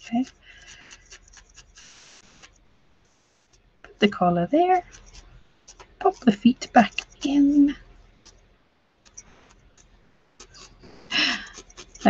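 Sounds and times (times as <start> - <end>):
felting needle ticks: 0.0 - 2.6, 3.4 - 12.0
scratchy rustle of wool: 0.0 - 12.0.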